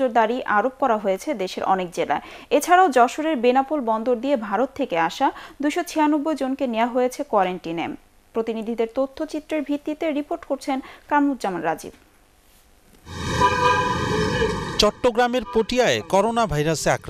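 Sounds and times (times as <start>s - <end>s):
steady horn-like tone: 13.0s - 16.7s
low rumbling noise: 13.1s - 16.1s.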